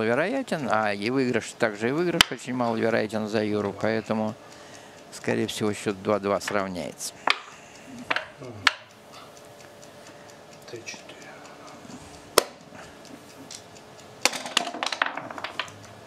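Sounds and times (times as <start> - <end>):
checkers and dice clicking: 14.2 - 15.8.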